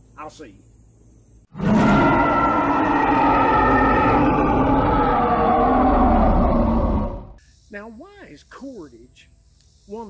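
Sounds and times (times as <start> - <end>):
long howling call: 1.5 - 7.4.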